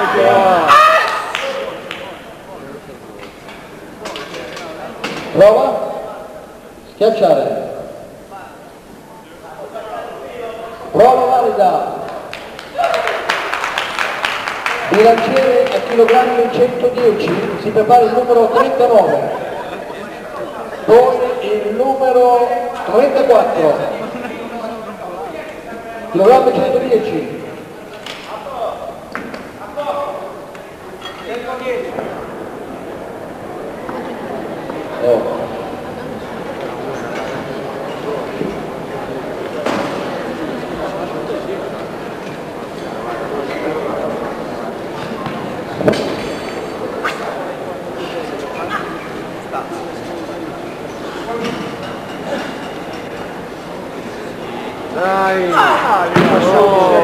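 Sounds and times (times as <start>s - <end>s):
loud shout: 0.0s - 1.6s, 55.2s - 57.0s
indistinct chatter of people: 0.0s - 57.0s
murmur of voices in a hall: 0.0s - 57.0s.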